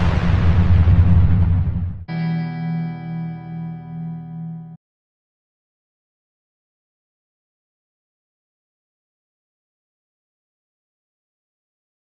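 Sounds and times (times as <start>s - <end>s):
low pulsing rumble: 0.0s - 4.7s
held guitar chord with effects: 2.1s - 4.8s.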